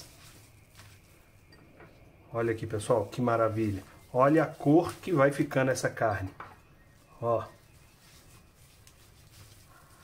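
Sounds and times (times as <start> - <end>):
hands rubbing spice into meat: 3.2 - 5.6, 7.0 - 10.0.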